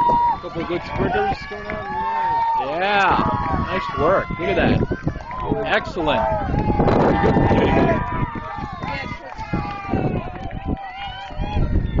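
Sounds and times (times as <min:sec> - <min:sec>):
spectators calling out: 0:00.0 - 0:12.0.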